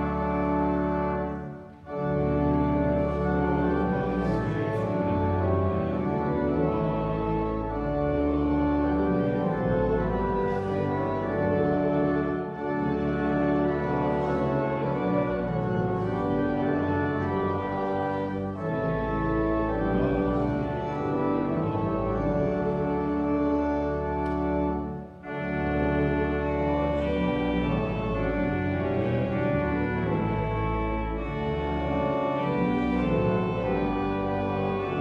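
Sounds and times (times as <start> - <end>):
church organ playing a hymn: 0.0 - 35.0.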